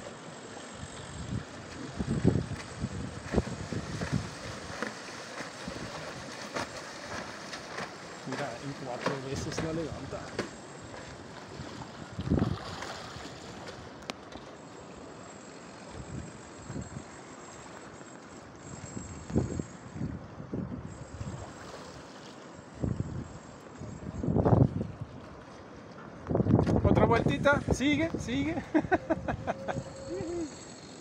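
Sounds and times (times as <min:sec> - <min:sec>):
outdoor hiss of wind and sea: 0:00.0 - 0:31.0
wind buffeting microphone: 0:01.1 - 0:04.8, 0:11.5 - 0:13.3, 0:18.8 - 0:21.5, 0:22.8 - 0:25.2, 0:26.2 - 0:30.5.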